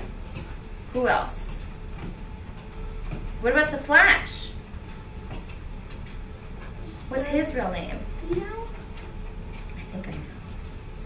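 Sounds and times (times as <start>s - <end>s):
light footfalls on treadmill: 0.0s - 11.0s
treadmill hum and belt rumble: 0.0s - 11.0s.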